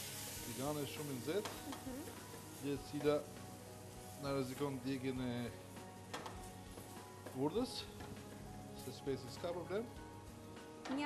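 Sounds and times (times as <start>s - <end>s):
food sizzling in a wok: 0.0s - 11.0s.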